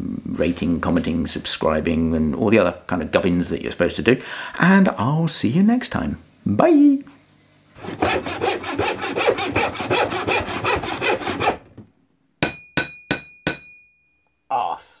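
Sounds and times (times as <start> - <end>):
rhythmic rasping sawing strokes: 7.8 - 11.7
sharp ringing metallic strikes: 12.4 - 14.3.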